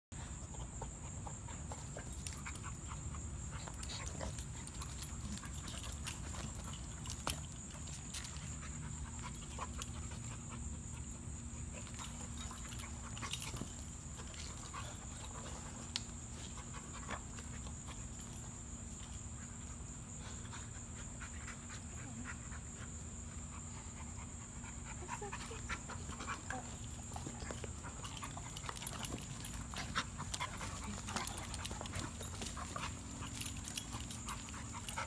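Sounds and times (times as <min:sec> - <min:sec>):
dogs panting: 0:00.2 - 0:35.0
high insect drone: 0:00.2 - 0:35.0
dogs scuffling on grass: 0:25.4 - 0:35.0.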